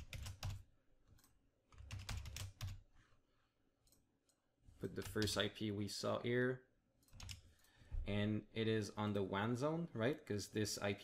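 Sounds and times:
typing on computer keyboard: 0:00.0 - 0:02.8, 0:07.0 - 0:07.6.

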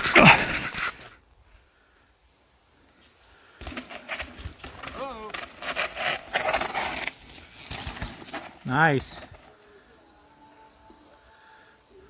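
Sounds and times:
bike tyres rolling on rock: 0:02.8 - 0:09.7.

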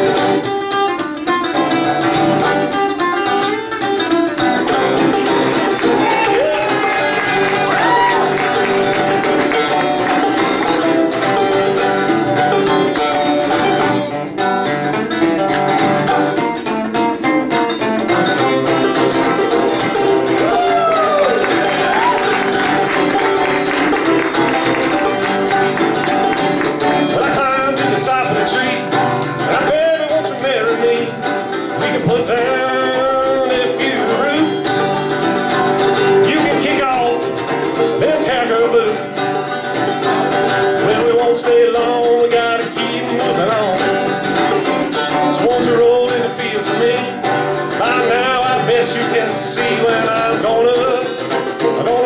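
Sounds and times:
banjo: 0:00.0 - 0:52.0
guitar: 0:00.0 - 0:52.0.

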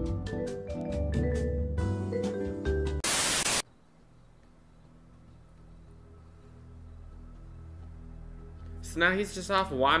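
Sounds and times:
tv static hiss: 0:03.0 - 0:03.7.

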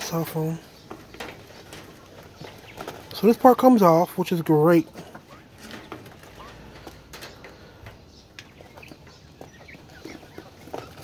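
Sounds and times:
quail chirping: 0:00.0 - 0:11.0.

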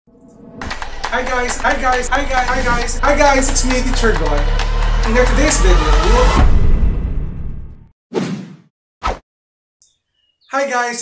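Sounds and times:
swoosh sound effects: 0:00.4 - 0:07.8.

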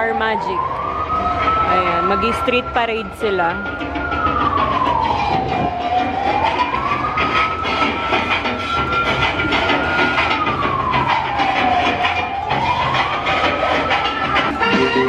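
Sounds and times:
siren wailing: 0:00.0 - 0:15.0
steady background din: 0:00.0 - 0:15.0.

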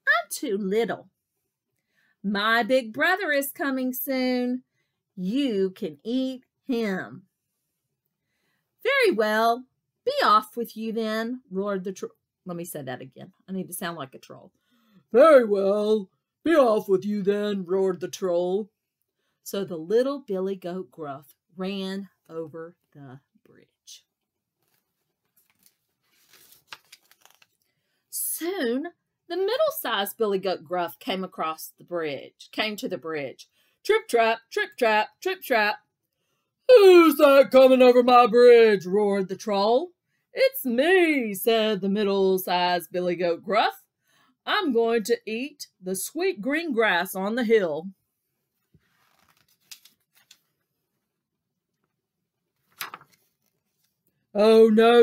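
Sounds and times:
picture book rustling and tapping: 0:24.5 - 0:27.6, 0:48.4 - 0:50.9, 0:51.8 - 0:54.1
paper page turning: 0:24.6 - 0:27.6, 0:48.6 - 0:50.7, 0:52.5 - 0:54.0.

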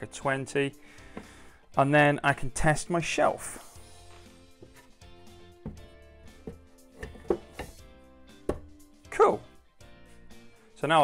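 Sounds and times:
soft instrumental music: 0:00.0 - 0:11.0
light wooden knocks: 0:05.6 - 0:07.8.

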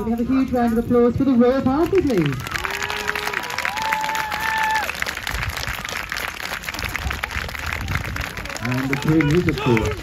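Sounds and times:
crowd applauding: 0:01.8 - 0:10.0.

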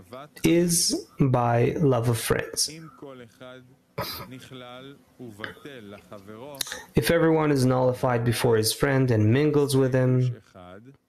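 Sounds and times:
man reading aloud: 0:00.0 - 0:11.0
throat clearing: 0:04.0 - 0:04.4.

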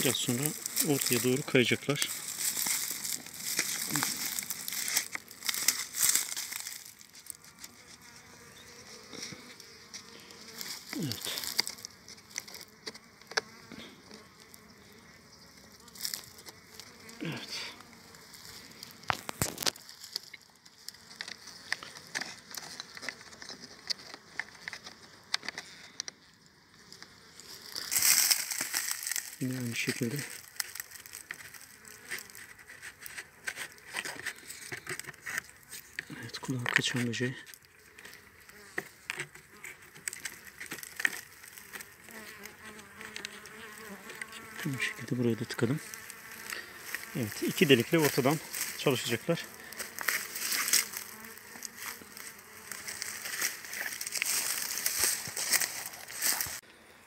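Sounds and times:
rustling and crinkling: 0:00.0 - 0:14.7, 0:15.6 - 0:26.1, 0:26.8 - 0:56.6
honeybees buzzing: 0:00.0 - 0:25.8, 0:26.4 - 0:57.0.

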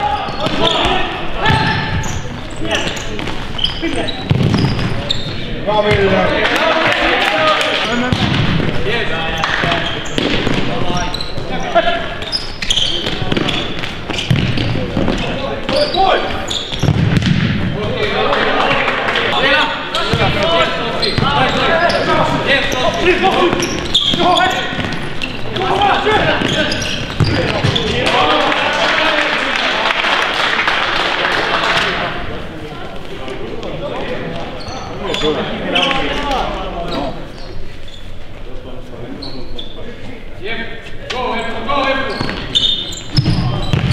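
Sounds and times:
players shouting: 0:05.6 - 0:12.2.

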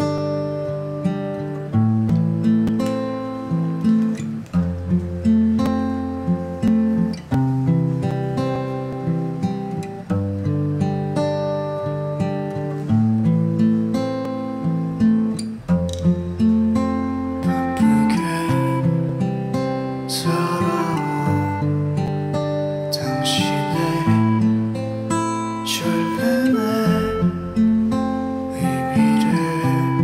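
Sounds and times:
ballad backing track: 0:00.0 - 0:30.0.

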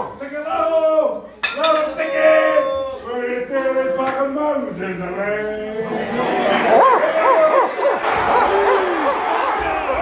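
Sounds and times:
crowd of men barking: 0:05.8 - 0:10.0.

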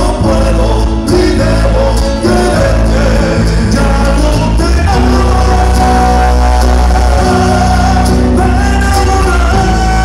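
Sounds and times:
guitars: 0:00.0 - 0:10.0
heavy bass: 0:00.0 - 0:10.0
man singing long note: 0:00.0 - 0:10.0.

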